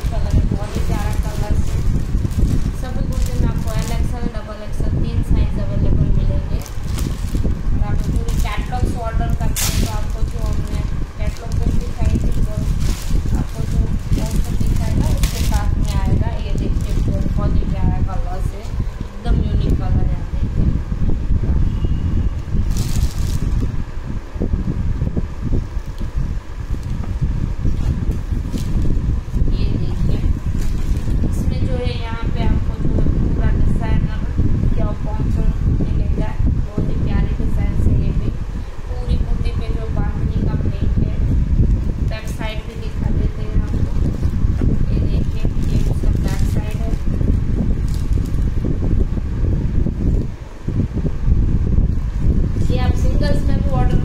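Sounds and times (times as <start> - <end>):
fabric rustling: 0.0 - 4.6, 6.0 - 19.8, 22.6 - 23.8, 25.8 - 32.1, 41.4 - 50.4
low microphone rumble: 0.0 - 54.0.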